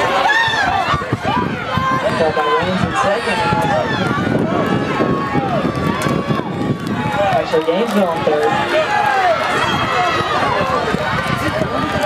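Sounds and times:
spectators shouting and cheering: 0.0 - 12.0.

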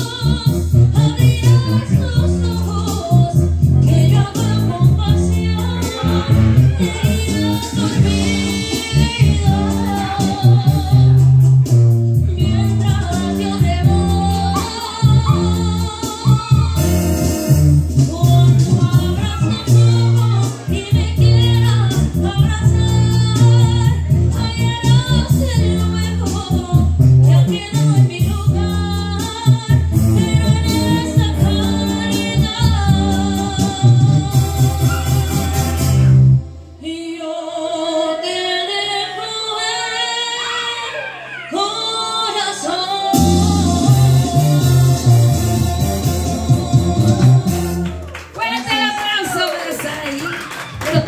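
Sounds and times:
woman singing a slow ballad: 0.0 - 11.5, 12.2 - 17.1, 18.0 - 35.0, 36.8 - 47.9
karaoke backing track: 0.0 - 51.0.

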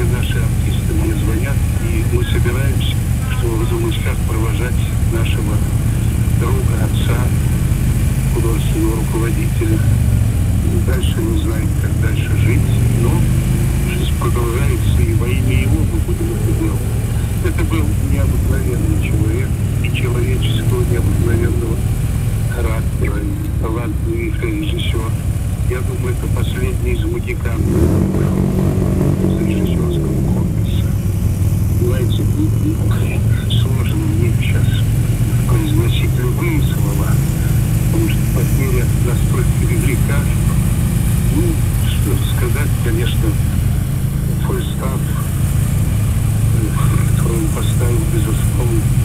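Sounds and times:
motorcycle engine running: 0.0 - 49.0.

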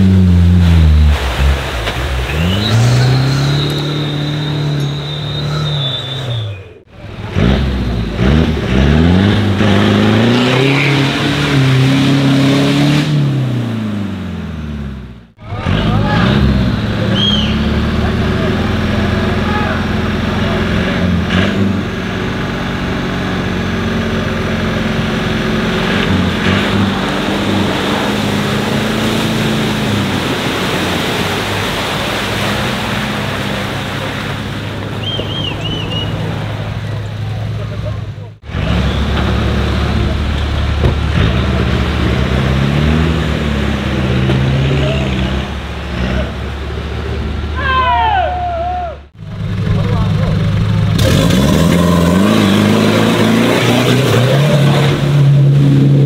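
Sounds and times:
off-road engines revving: 0.0 - 56.0.

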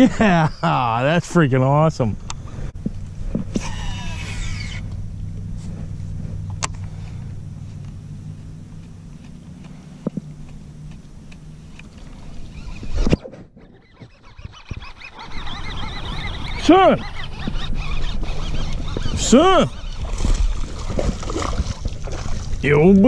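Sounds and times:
boat motor humming: 0.0 - 23.0.

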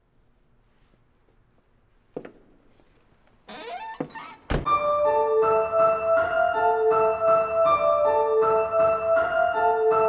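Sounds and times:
piano music: 4.7 - 10.0.

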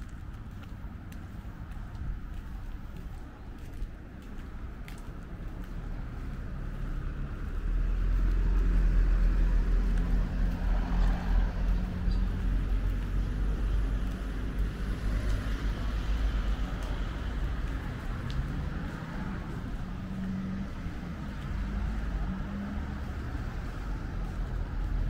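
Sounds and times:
car engine and tyre noise: 0.0 - 25.0
traffic rumble: 0.0 - 25.0.

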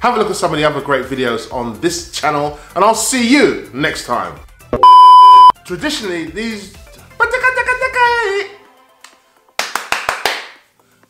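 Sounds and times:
sharp claps: 9.0 - 10.7.

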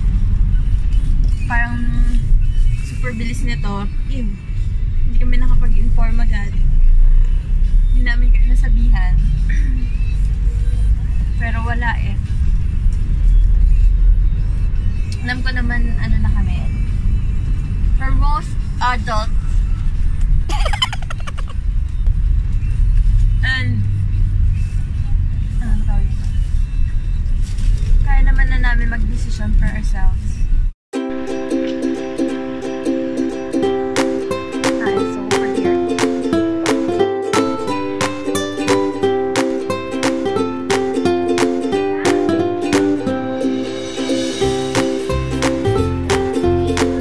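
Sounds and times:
car engine rumble: 0.0 - 30.8, 31.6 - 47.0
road noise inside car: 0.0 - 30.8
background music: 31.0 - 47.0.

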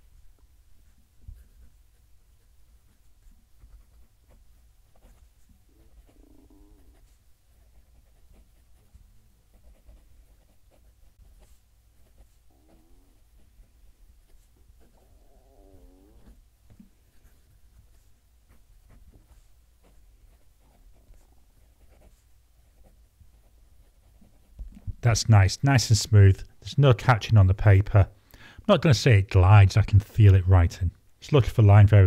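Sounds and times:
fountain pen scratching on paper: 2.9 - 6.2, 6.8 - 13.6, 16.2 - 24.8.

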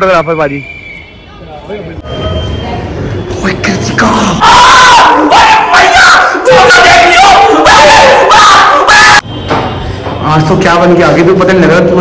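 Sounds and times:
men shouting loudly: 4.4 - 9.2.

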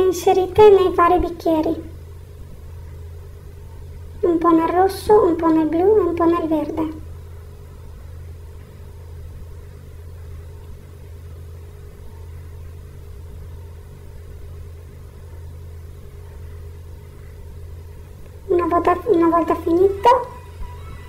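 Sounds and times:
faint steady tones: 0.0 - 21.0
steady low hum: 0.0 - 21.0.

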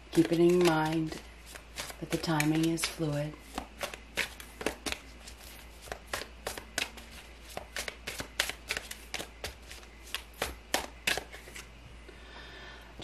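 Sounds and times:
cards being shuffled: 0.1 - 11.7.

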